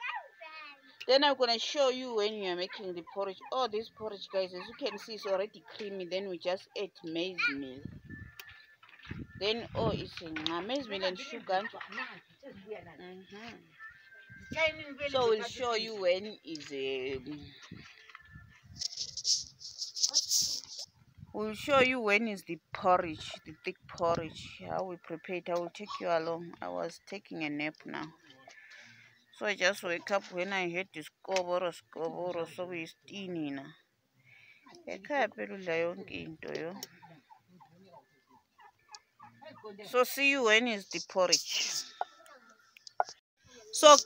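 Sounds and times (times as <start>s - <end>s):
poultry calling: 36.7s - 43.2s.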